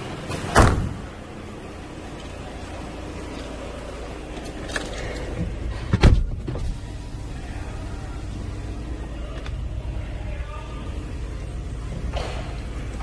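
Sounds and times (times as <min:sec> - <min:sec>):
diesel engine idling: 0:00.0 - 0:13.0.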